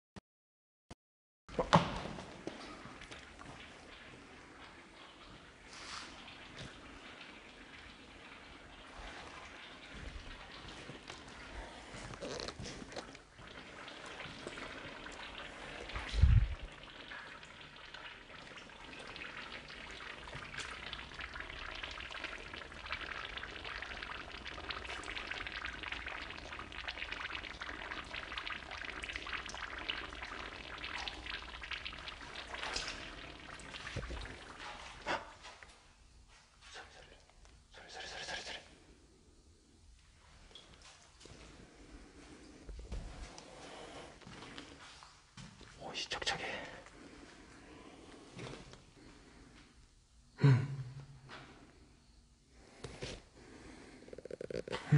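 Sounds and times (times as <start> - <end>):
water trickling and dripping: 1.6 - 38.9, 40.0 - 49.9.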